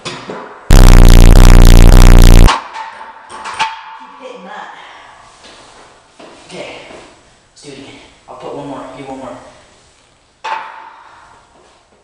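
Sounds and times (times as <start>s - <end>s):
distorted synthesized sound effect: 0.7s - 2.5s.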